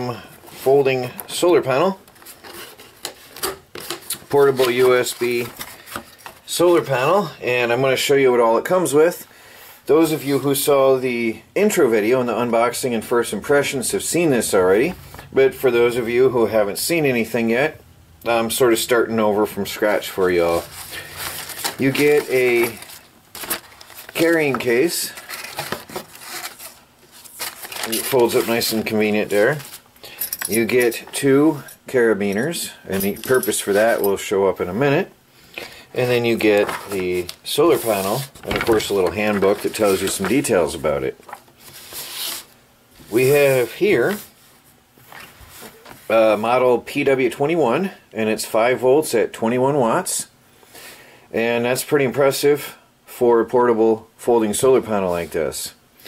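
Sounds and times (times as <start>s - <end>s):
cardboard scraping: 20.2s - 29.8s, 36.3s - 44.4s
nylon bag rustling: 20.4s - 29.8s.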